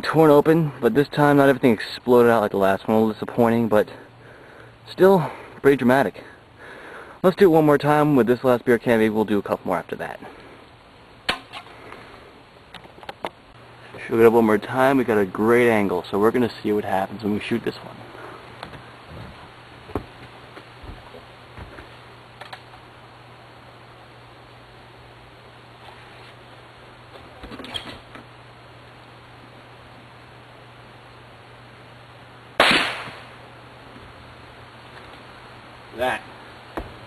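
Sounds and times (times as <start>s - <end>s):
pellet gun pop: 32.6s - 33.3s.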